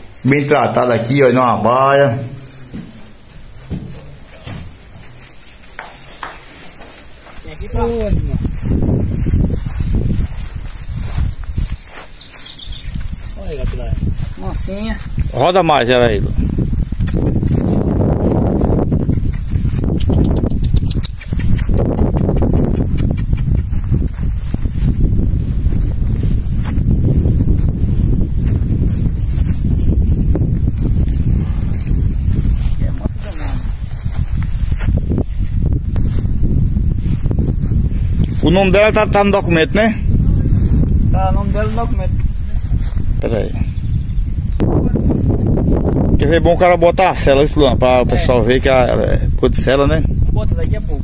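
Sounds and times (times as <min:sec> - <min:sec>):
footsteps on grassy dirt: 0:00.0 - 0:43.4
horse hooves on dirt: 0:02.2 - 0:15.5, 0:16.4 - 0:35.6
wind buffeting microphone: 0:07.2 - 0:51.0.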